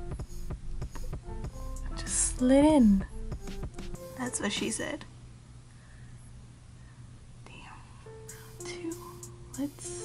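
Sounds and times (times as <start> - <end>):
low steady hum: 0.0 - 10.0
faint whispered voice: 7.4 - 10.0.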